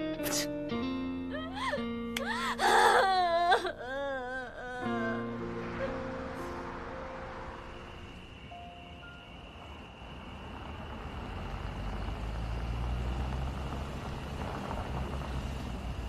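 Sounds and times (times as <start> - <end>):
crickets chirring: 2.6 - 16.0
vehicle driving slowly: 4.9 - 16.0.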